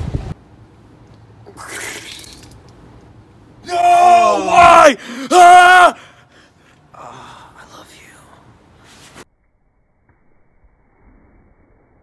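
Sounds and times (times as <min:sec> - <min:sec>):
person whispering: 0:07.0 - 0:08.5.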